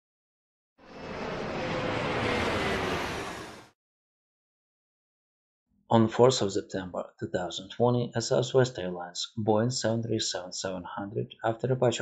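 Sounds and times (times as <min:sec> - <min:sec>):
falling whine: 0:00.8 - 0:03.8
jet aircraft passing: 0:00.8 - 0:03.8.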